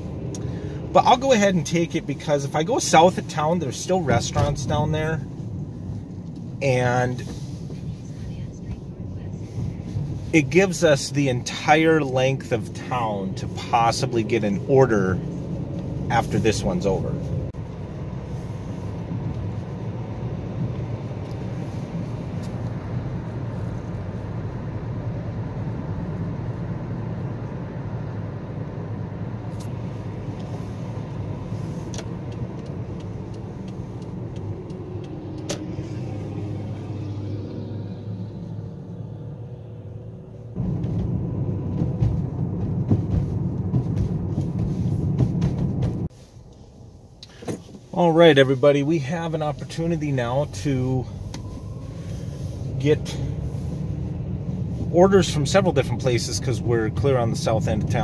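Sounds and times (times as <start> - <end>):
car engine rumble: 0.0 - 58.0
tyres on road: 0.0 - 58.0.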